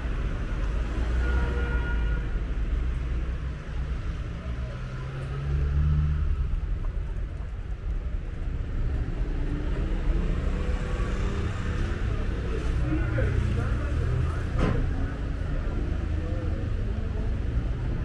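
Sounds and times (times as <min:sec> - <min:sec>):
car engines passing: 0:02.2 - 0:18.0.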